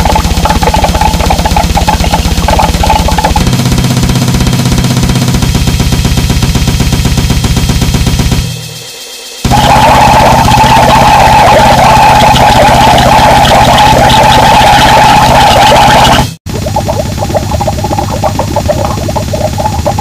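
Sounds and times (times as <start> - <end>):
harsh distorted noise music: 0.0 - 20.0
noise track with pulsing low end: 0.0 - 20.0.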